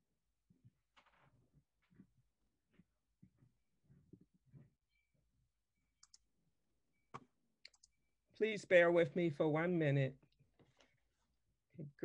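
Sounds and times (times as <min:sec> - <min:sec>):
computer mouse clicks: 0:06.0 - 0:06.2, 0:07.1 - 0:08.0.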